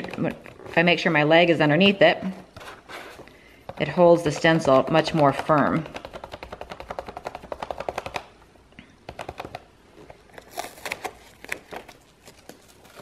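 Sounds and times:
stencil brush tapping: 0:03.7 - 0:08.3.

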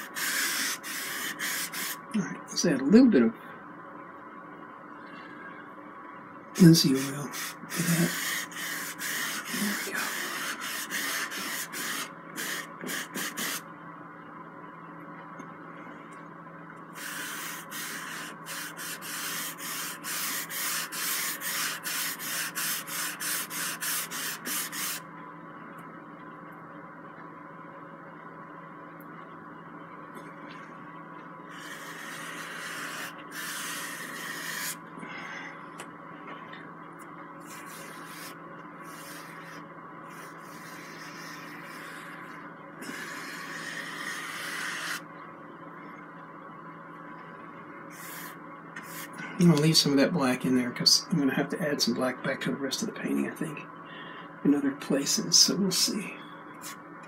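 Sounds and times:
paintbrush scrubbing on canvas: 0:00.0 - 0:02.0, 0:06.8 - 0:13.6, 0:17.0 - 0:25.0, 0:31.5 - 0:34.8, 0:37.5 - 0:45.0.

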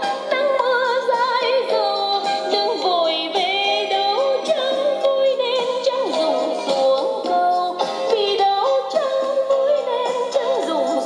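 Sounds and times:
person singing with vibrato: 0:00.0 - 0:11.0
song through small speakers: 0:00.0 - 0:11.0.

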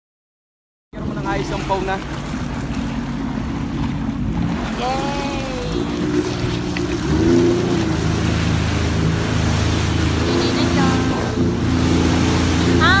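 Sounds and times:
jet ski engine running: 0:01.0 - 0:13.0.

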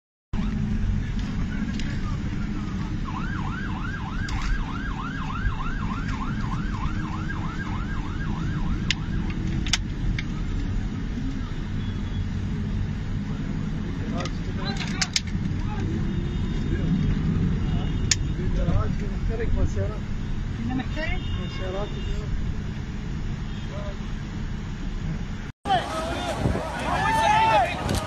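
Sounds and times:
siren yelping: 0:02.2 - 0:09.4.

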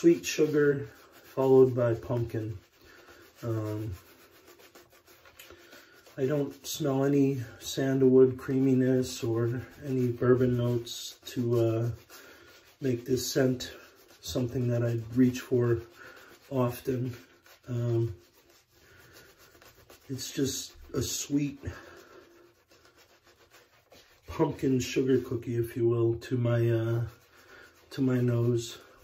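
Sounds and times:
shaving brush scratching: 0:00.0 - 0:29.0.

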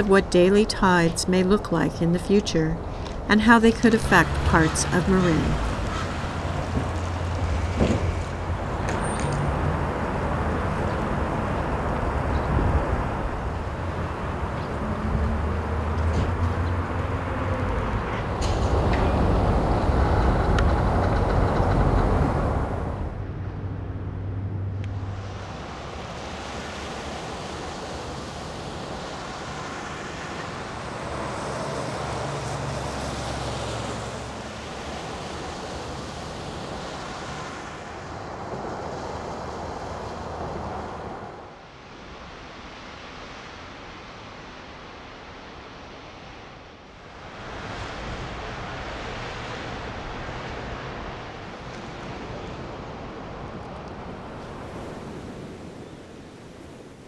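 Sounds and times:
heavy low engine rumble: 0:00.0 - 0:25.6
vehicle passing: 0:00.0 - 0:41.4
road traffic noise: 0:00.0 - 0:57.0.

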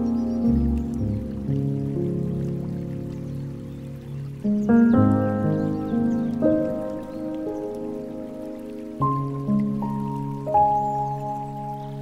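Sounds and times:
soft piano chords: 0:00.0 - 0:12.0
water trickling from fountain: 0:00.0 - 0:12.0.

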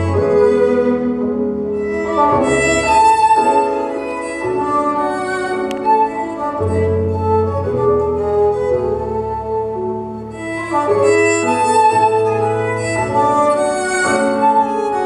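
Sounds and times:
two fiddles playing a duet: 0:00.0 - 0:15.0.

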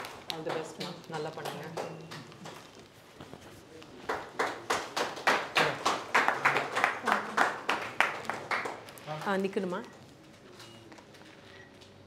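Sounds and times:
hands clapping: 0:00.0 - 0:02.9, 0:03.8 - 0:09.5.

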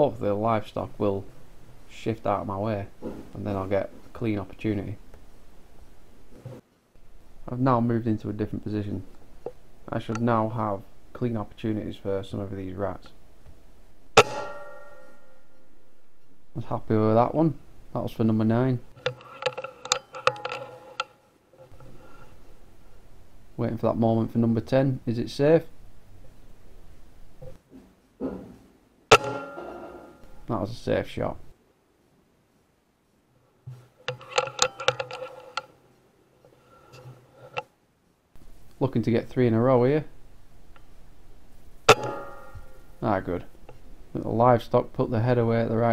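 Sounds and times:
air rifle shot with metallic ringing: 0:14.2 - 0:15.6, 0:29.1 - 0:30.2, 0:41.9 - 0:43.0
metallic ringing: 0:14.2 - 0:15.9, 0:19.0 - 0:21.8, 0:29.1 - 0:30.5, 0:34.1 - 0:35.6, 0:41.9 - 0:43.0
air rifle cycling clicks: 0:34.1 - 0:35.7.

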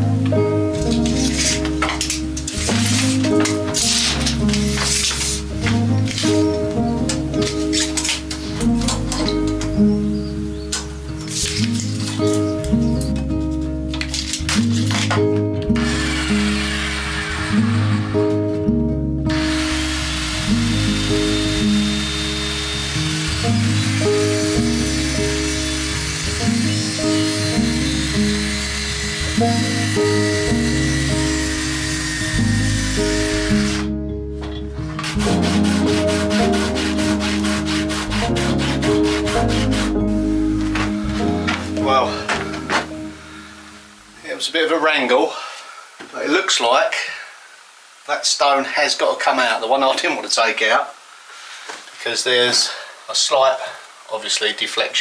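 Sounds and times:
background music with bass line: 0:00.0 - 0:44.2
strummed music: 0:00.0 - 0:44.2
power tool cutting wood: 0:15.7 - 0:18.6, 0:19.3 - 0:34.0.

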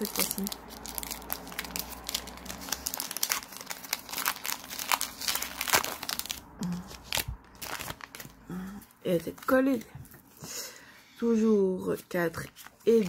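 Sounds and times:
foil wrapper crinkling and tearing: 0:00.0 - 0:08.4.

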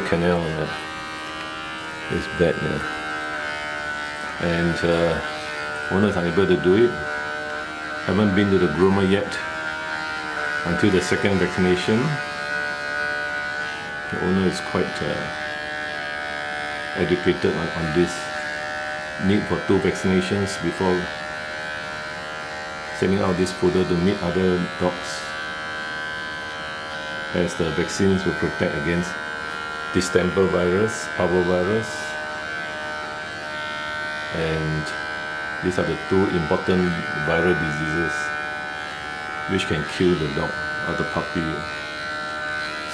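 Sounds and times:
electric hair clipper humming: 0:00.0 - 0:42.9.

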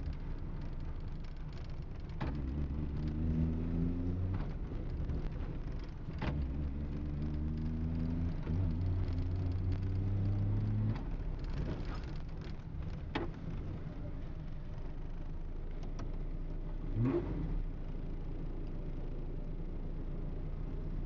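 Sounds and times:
road noise: 0:00.0 - 0:20.9.

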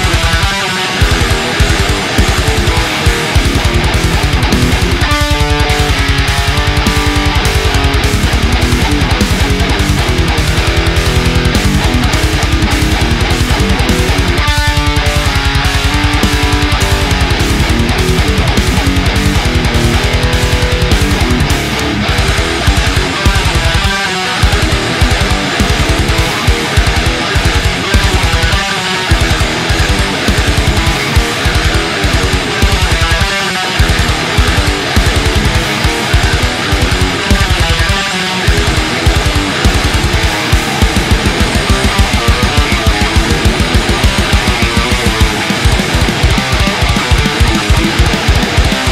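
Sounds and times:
distorted electric guitar riffs: 0:00.0 - 0:48.9.

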